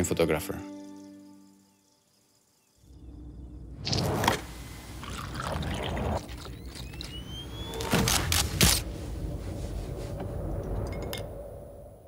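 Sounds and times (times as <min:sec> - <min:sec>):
liquid pouring and splashing: 0:05.0 - 0:06.6.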